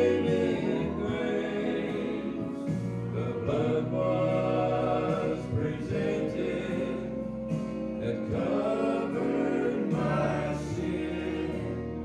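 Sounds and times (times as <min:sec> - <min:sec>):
male vocal group singing in harmony: 0:00.0 - 0:12.0.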